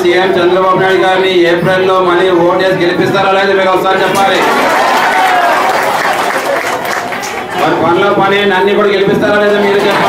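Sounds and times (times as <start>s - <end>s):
crowd applauding: 4.1s - 7.8s, 9.3s - 10.0s.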